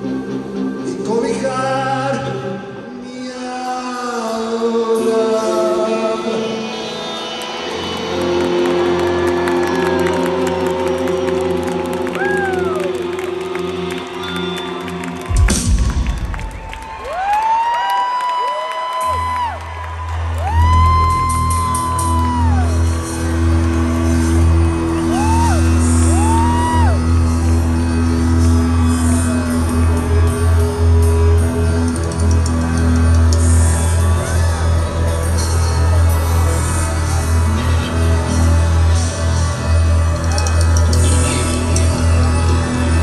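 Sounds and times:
audience whooping: 7.0 - 43.0
low bass and keyboard drone: 20.1 - 43.0
live rock band through pa: 20.5 - 43.0.

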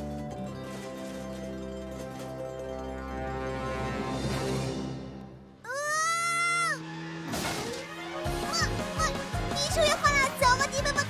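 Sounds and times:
upbeat cartoon music: 0.0 - 5.6, 7.9 - 11.0.

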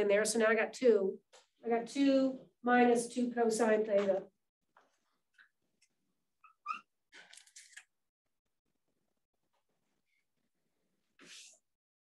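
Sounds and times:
marker squeaking on whiteboard: 6.4 - 7.8.

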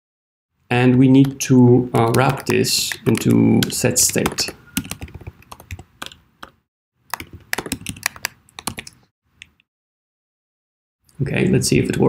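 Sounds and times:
computer keyboard typing: 2.0 - 9.0.

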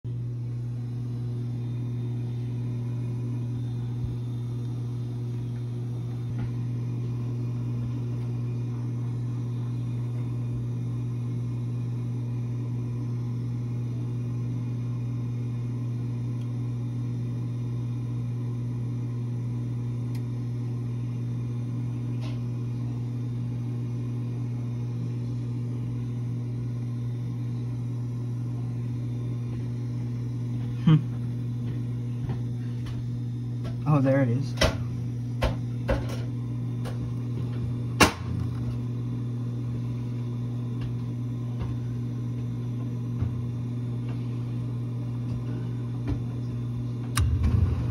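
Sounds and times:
furnace motor humming: 0.1 - 47.9.

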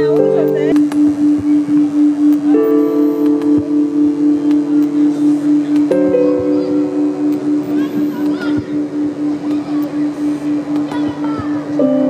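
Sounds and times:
pulsing low drone note: 0.0 - 12.0
sustained high note: 1.0 - 12.0.

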